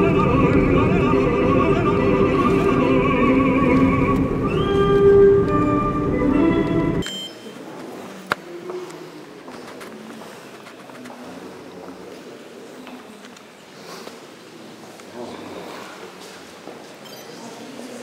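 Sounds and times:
moving car rumble: 0.0s - 7.0s.

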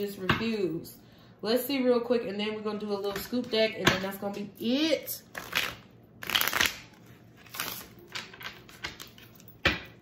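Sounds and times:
cards shuffling: 5.3s - 9.6s.

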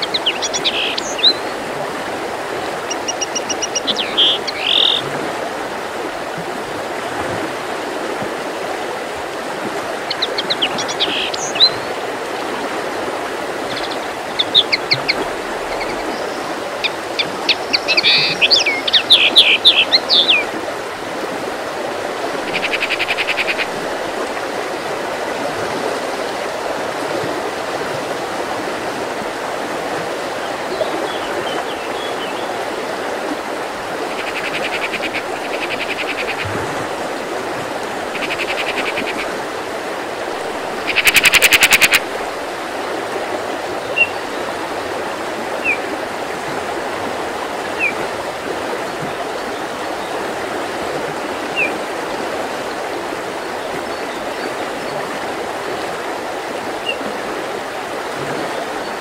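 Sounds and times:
songbirds chirping: 0.0s - 1.6s, 22.4s - 23.7s, 34.1s - 36.4s
bird trill: 2.9s - 5.0s, 22.5s - 23.7s, 40.9s - 42.0s.

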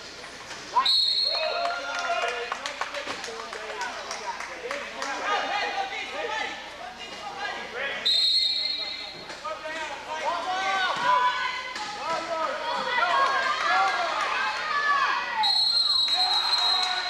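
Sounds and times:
voices in a hall: 0.6s - 17.0s
referee's whistle: 0.8s - 1.6s, 8.0s - 9.2s, 15.4s - 17.0s.

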